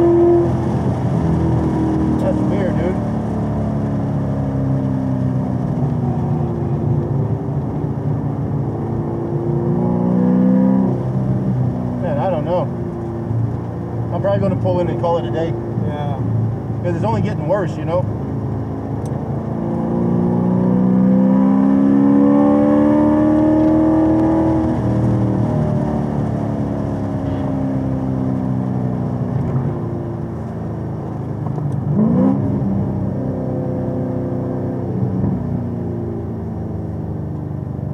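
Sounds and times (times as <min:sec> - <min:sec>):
car engine revving: 0:00.0 - 0:37.7.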